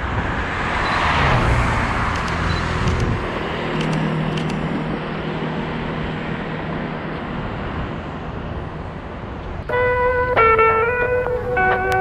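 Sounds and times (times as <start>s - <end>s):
road vehicle passing by: 0.0s - 12.0s.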